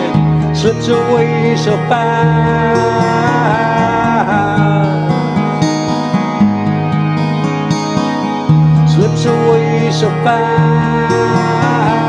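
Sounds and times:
acoustic guitar playing: 0.0s - 12.0s
held vocal note bending down: 8.9s - 12.0s.

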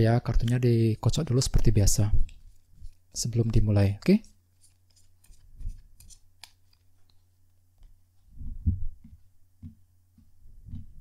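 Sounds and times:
cards shuffling: 4.6s - 7.2s
soft low thuds: 8.3s - 11.0s.

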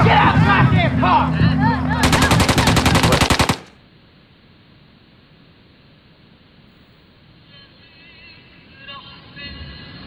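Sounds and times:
automatic gunfire: 2.0s - 3.8s.

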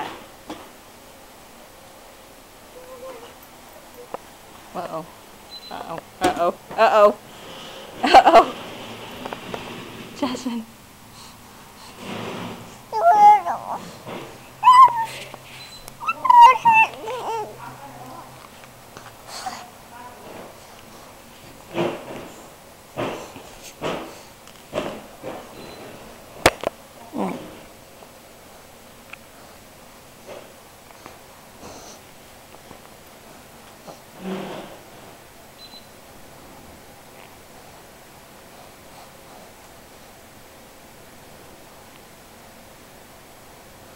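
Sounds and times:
camera recording hiss: 0.0s - 43.9s
baby squealing: 12.9s - 13.8s, 14.6s - 15.2s, 16.0s - 17.6s.

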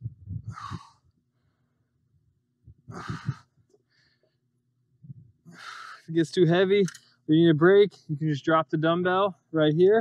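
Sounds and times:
man breathing out hard: 0.4s - 1.9s, 2.8s - 4.3s, 5.4s - 6.1s.

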